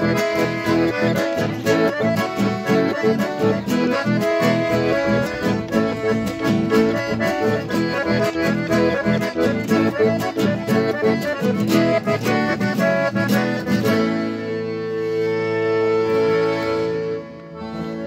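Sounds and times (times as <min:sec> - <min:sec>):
button accordions playing: 0:00.0 - 0:18.0
strummed acoustic guitar: 0:00.0 - 0:18.0.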